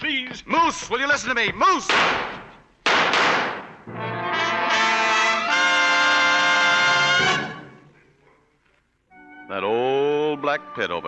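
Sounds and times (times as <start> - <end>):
gunshot: 1.9 - 3.8
brass orchestral chord: 3.9 - 7.8.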